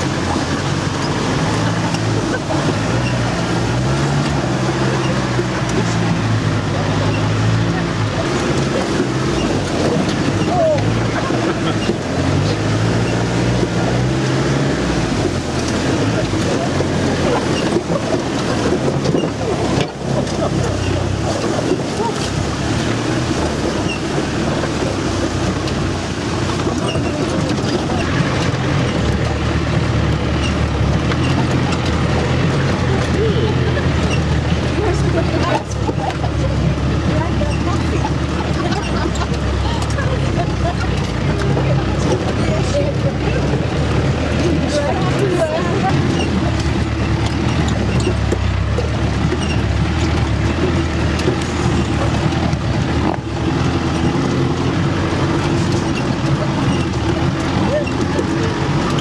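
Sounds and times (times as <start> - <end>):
engine running under load: 0.0 - 59.0.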